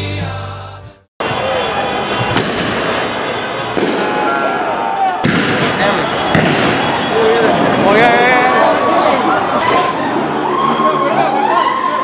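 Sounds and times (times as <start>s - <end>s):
firework bangs: 1.2s - 8.2s
crowd shouting: 1.2s - 12.0s.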